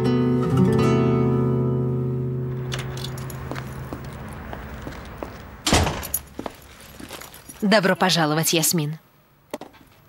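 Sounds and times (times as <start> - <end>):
acoustic guitar chord strummed: 0.0 - 2.6
keys jingling: 2.6 - 4.4, 6.0 - 7.6.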